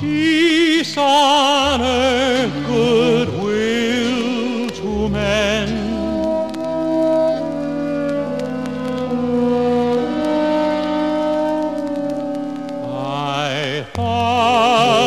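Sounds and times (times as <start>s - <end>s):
singing voice with vibrato: 0.0s - 10.1s, 10.8s - 15.0s
orchestra and choir chords: 0.0s - 15.0s.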